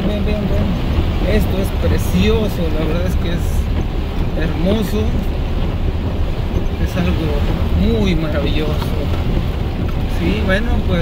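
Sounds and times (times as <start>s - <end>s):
heavy rain on vehicle roof: 0.0s - 11.0s
vehicle low rumble: 0.0s - 11.0s.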